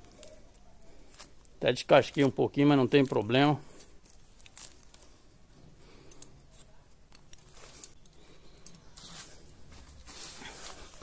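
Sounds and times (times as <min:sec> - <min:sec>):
plastic tape rustling: 0:00.0 - 0:11.0.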